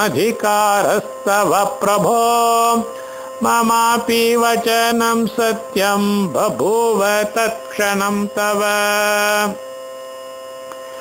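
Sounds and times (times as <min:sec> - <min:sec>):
man chanting verse: 0:00.0 - 0:09.6
electrical mains hum: 0:00.0 - 0:11.0.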